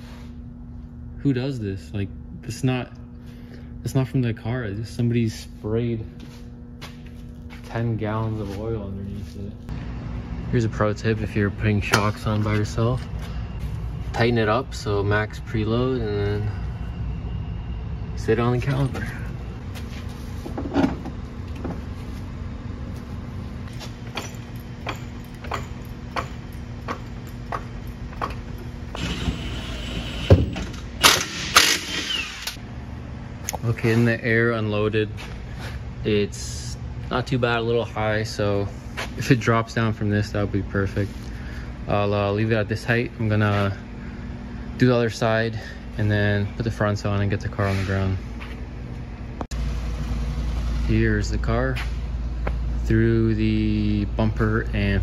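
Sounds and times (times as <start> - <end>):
low workshop hum: 0.0 - 55.0.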